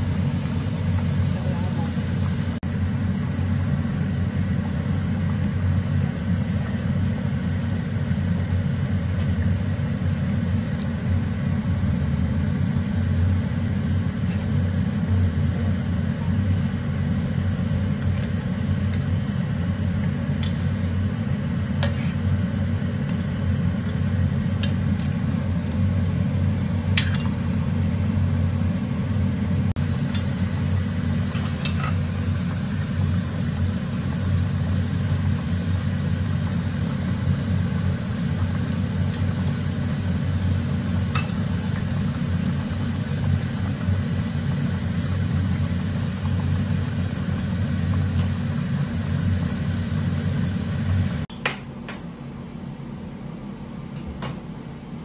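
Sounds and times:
gas stove rumble: 0.0 - 52.0.

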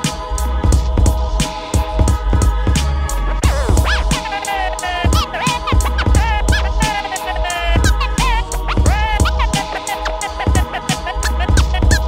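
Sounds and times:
hip-hop drum beat: 0.0 - 12.0
vinyl scratching: 0.0 - 12.0.

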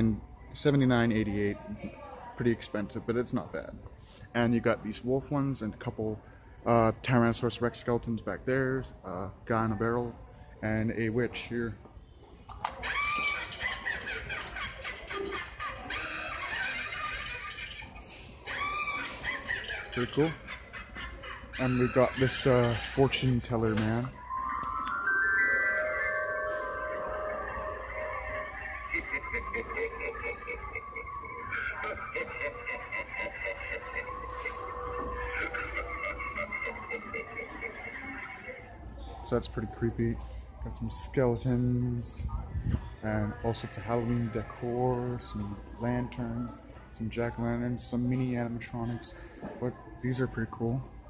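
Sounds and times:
spooky music from small speaker: 12.6 - 17.8, 18.4 - 38.8
high wavering voice: 15.5 - 38.8.

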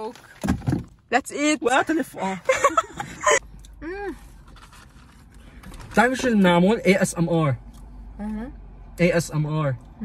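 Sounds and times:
person laughing: 2.5 - 3.4.

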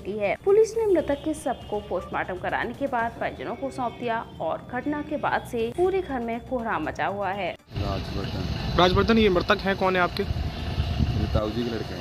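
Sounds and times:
low outdoor rumble: 7.7 - 12.0.

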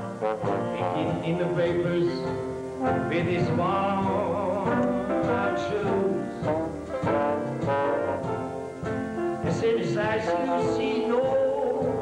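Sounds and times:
brass instrument melody: 0.0 - 12.0
jazz band playing slow tune: 0.0 - 12.0.

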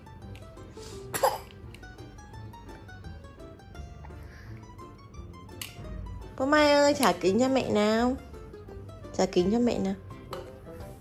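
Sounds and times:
background music: 0.0 - 11.0
short sharp cough: 1.1 - 1.5.

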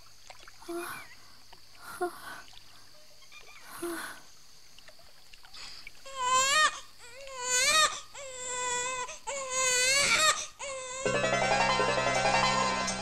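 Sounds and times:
infant crying: 6.1 - 11.2
film score with keyboard: 11.0 - 13.0.

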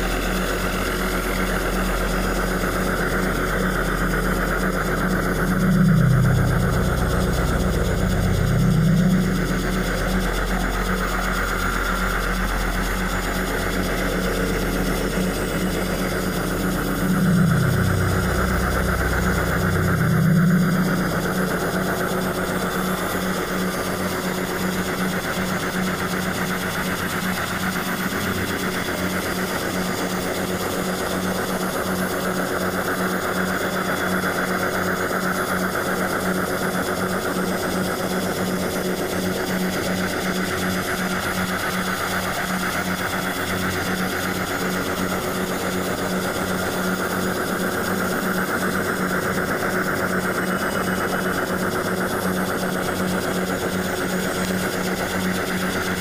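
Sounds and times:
pulsing low machine drone: 0.0 - 56.0.

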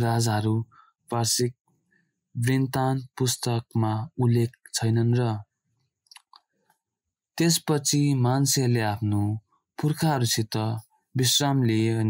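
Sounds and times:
person reading aloud: 0.0 - 1.5, 2.4 - 5.4, 7.4 - 12.0.

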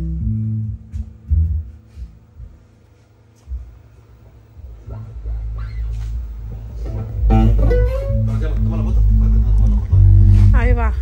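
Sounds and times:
electric bass notes: 0.0 - 2.9, 3.5 - 11.0
guitars through speakers: 0.0 - 11.0.

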